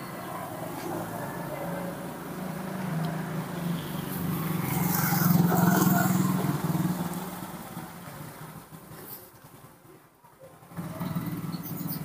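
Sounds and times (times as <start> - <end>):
passing vehicle engine hum: 0.0 - 9.0.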